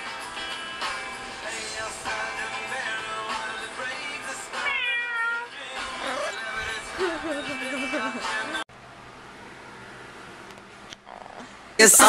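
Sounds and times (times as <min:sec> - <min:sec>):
cat meowing: 0:04.6 - 0:06.3.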